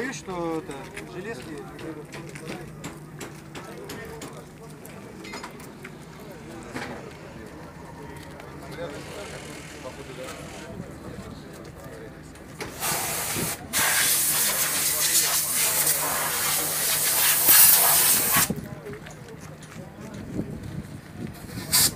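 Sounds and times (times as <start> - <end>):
pressurised jet hissing: 12.7 - 18.5.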